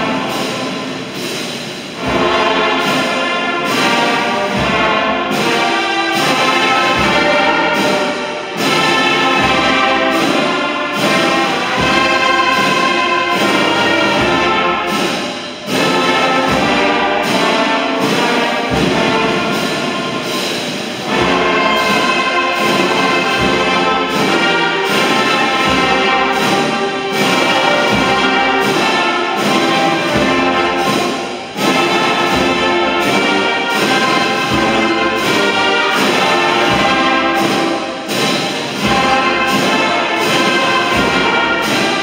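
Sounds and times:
brass band playing a hymn: 0.0s - 42.0s.

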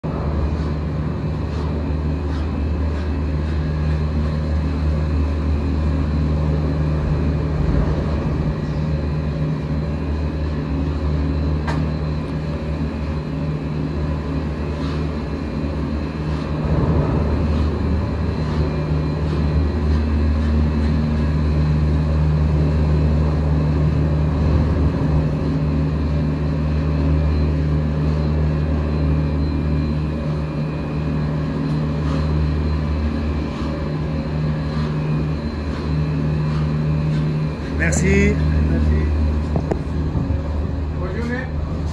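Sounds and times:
lift machinery humming: 0.0s - 41.9s.

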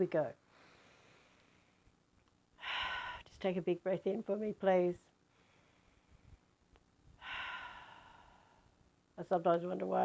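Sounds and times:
woman sighing: 2.6s - 3.2s, 7.2s - 8.6s.

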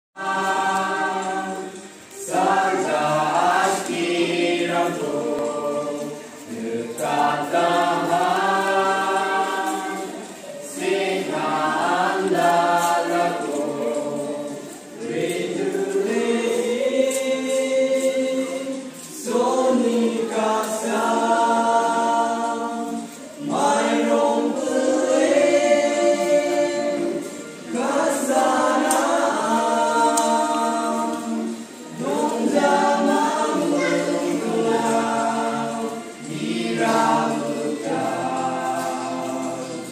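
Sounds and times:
group of voices singing unaccompanied: 0.1s - 39.9s.

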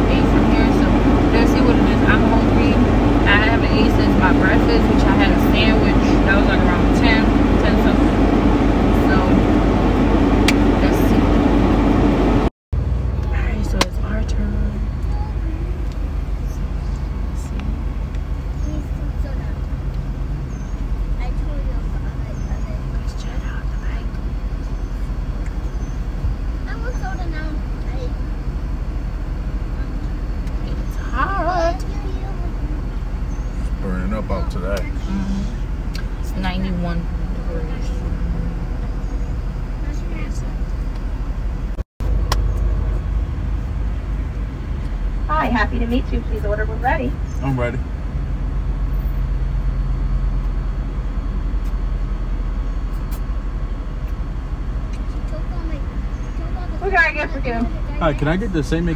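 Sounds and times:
voices: 0.0s - 12.4s, 13.1s - 41.0s, 45.0s - 49.2s, 54.9s - 58.9s
car cabin rumble and hum: 0.0s - 58.9s.

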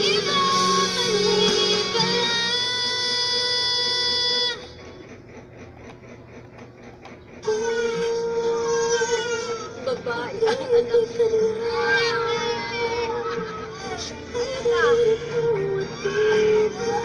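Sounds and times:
pop ballad from a screen: 0.0s - 4.3s, 10.4s - 17.0s.

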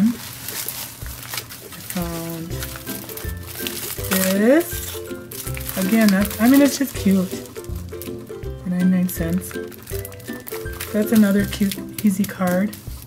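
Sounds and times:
plastic packages crinkling: 0.0s - 13.0s.

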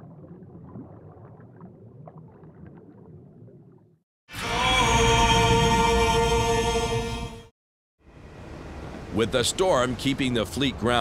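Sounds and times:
gurgle-like blips: 0.0s - 4.0s.

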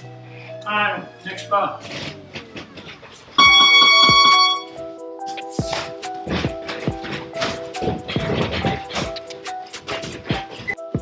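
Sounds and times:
background music: 0.0s - 11.0s
electronic timer beep: 3.4s - 4.7s
footwork on floor: 5.2s - 11.0s.

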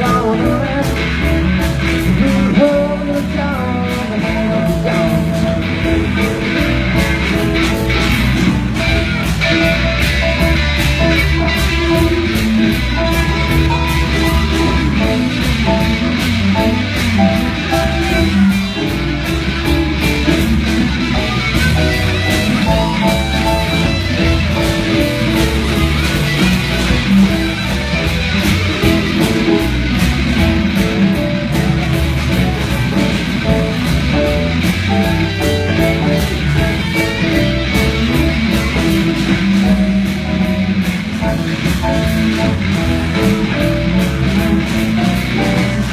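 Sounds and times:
drums: 0.0s - 45.9s
electric guitars: 0.0s - 45.9s.

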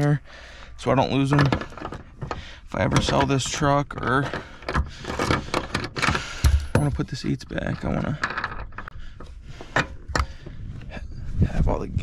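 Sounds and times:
metal bolt clicks and rattles: 1.2s - 10.3s.

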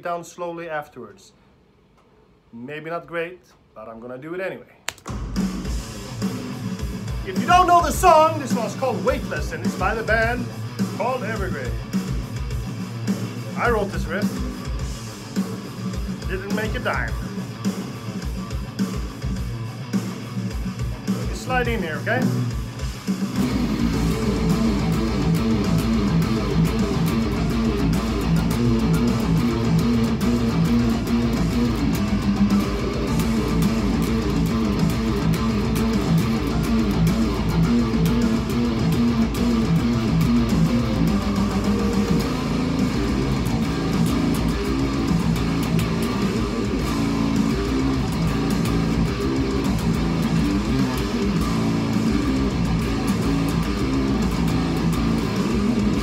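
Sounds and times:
electric guitar metal riff: 5.1s - 56.0s.

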